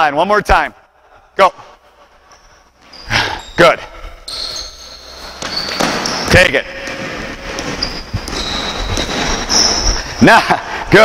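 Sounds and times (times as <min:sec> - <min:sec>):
sneakers squeaking: 0:01.8 - 0:10.3
players running: 0:04.3 - 0:10.3.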